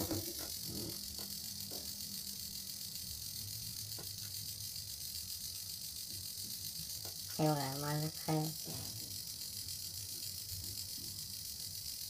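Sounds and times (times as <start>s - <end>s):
small motor humming: 0.0s - 12.0s.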